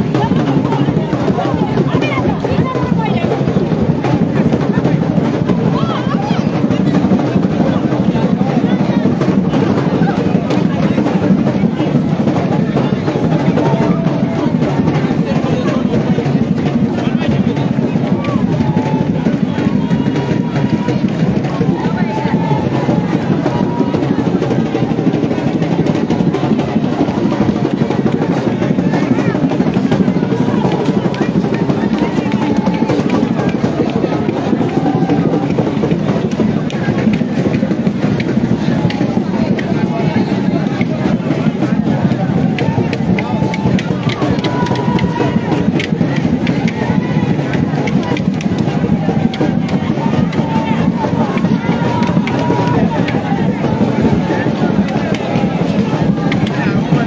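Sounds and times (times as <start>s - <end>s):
crowd voices: 0.0s - 57.0s
drumming: 0.0s - 57.0s
music: 0.0s - 57.0s.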